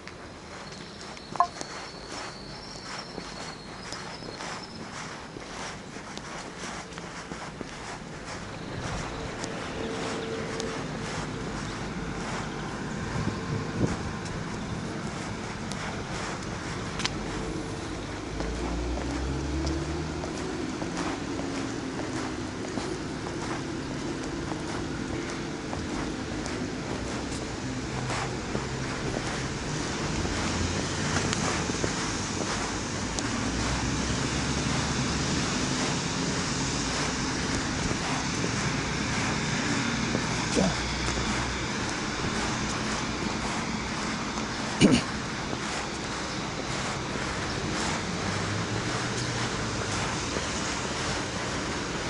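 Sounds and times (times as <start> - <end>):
road traffic: 0.0 - 52.0
wind on microphone: 0.0 - 52.0.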